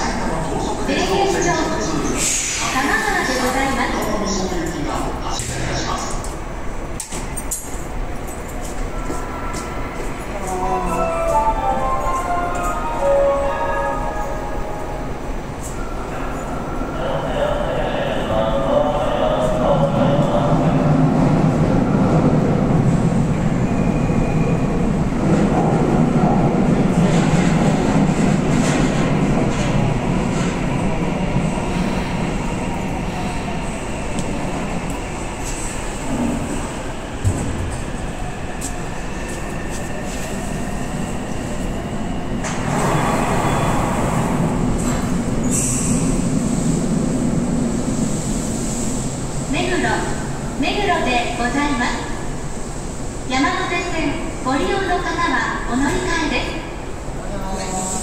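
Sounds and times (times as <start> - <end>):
train wheels rumbling on rail: 18.6 - 58.0.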